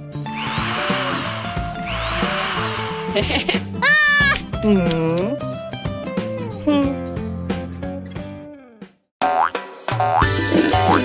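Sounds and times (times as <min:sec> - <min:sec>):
background music: 0:00.0 - 0:11.0
cordless drill whirring: 0:00.2 - 0:03.3.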